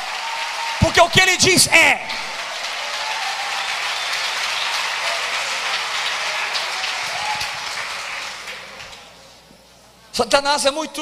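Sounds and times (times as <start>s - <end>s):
congregation applauding: 0.0s - 9.2s.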